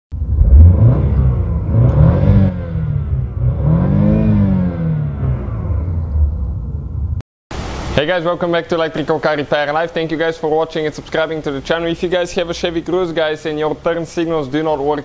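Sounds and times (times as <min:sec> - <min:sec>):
car engine revving: 0:00.2 - 0:07.2.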